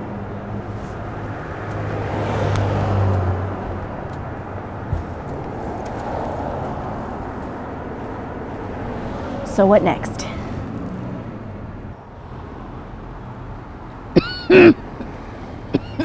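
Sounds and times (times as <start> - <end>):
vehicle passing: 0.0 - 14.1
steady traffic noise: 0.0 - 16.0.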